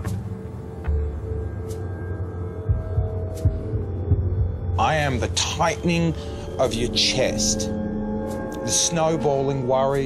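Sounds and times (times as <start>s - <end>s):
steady low drone: 0.0s - 10.0s
heartbeat thuds: 2.7s - 4.8s
man narrating: 4.8s - 7.8s, 8.6s - 10.0s.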